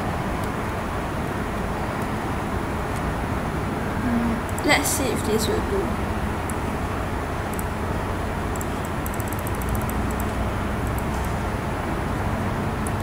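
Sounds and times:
room hum and hiss: 0.0 - 13.0.

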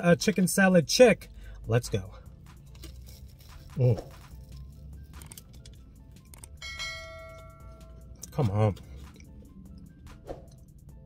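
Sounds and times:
low steady hum: 0.0 - 11.0
chewing crunches: 2.5 - 6.6
ringing bell-like chime: 6.6 - 8.0.

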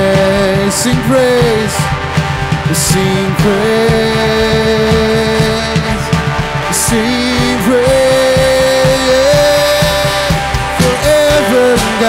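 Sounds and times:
person singing: 0.0 - 12.0
worship band playing: 0.0 - 12.0.

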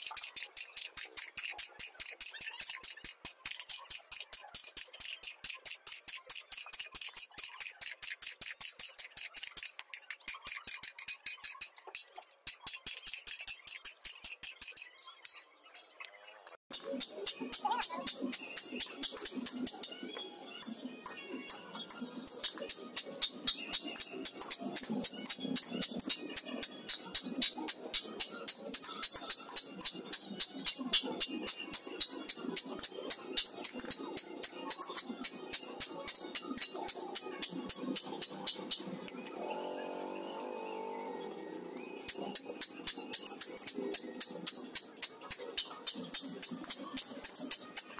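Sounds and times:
hammer striking metal: 0.0 - 15.4, 16.7 - 20.0, 20.6 - 38.9, 42.0 - 47.9
background music: 15.2 - 47.9.

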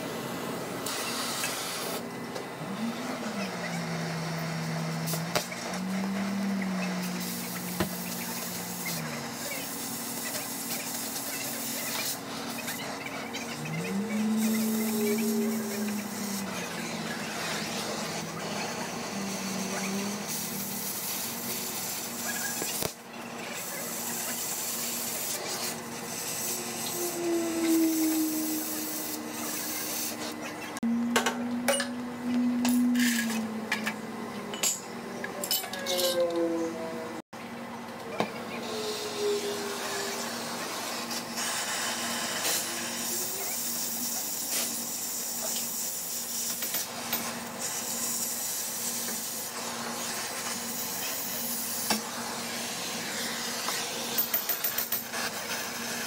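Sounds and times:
cutting torch hissing: 0.8 - 2.1, 2.7 - 30.8, 38.6 - 54.0.

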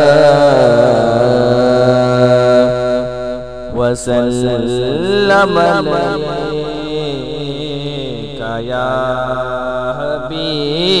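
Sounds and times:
man chanting melismatic notes: 0.0 - 11.0.

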